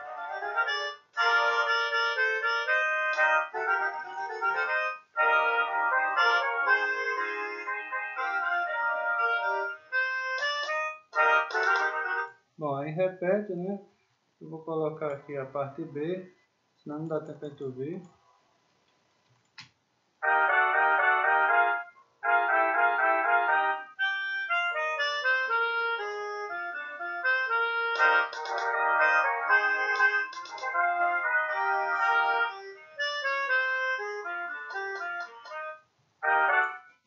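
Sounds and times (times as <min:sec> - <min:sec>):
sampled brass section playing: 0:00.0 - 0:09.8, 0:27.5 - 0:36.8.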